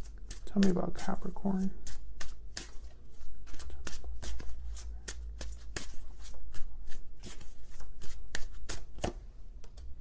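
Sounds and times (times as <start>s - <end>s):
cards being shuffled: 0.0s - 1.2s, 1.8s - 10.0s.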